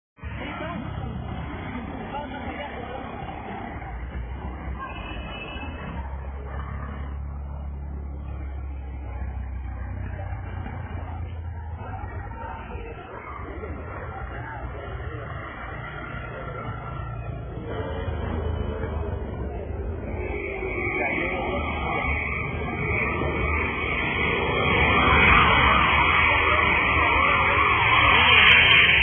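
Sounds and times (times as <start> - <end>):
people talking: 0.2 - 29.0
traffic: 0.2 - 29.0.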